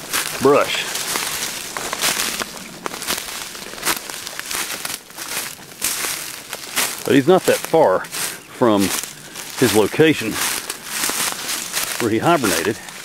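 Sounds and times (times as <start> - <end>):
footsteps crunching through dry leaves: 0.0 - 13.0
twigs scraping: 0.0 - 13.0.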